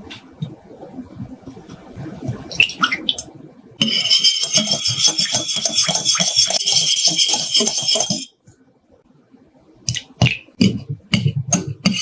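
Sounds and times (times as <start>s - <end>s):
whisk beating against glass bowl: 3.8s - 8.4s.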